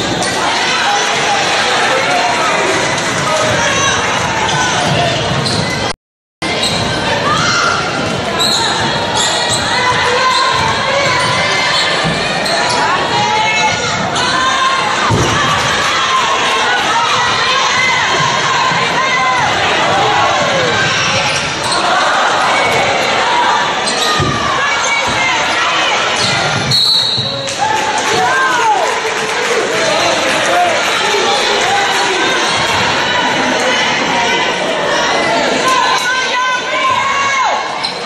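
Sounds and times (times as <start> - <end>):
crowd murmur with voices: 0.0 - 38.0
sneakers squeaking: 4.5 - 5.9, 6.5 - 7.0, 8.3 - 14.4, 20.5 - 22.0, 23.7 - 25.3, 26.1 - 27.5, 37.7 - 38.0.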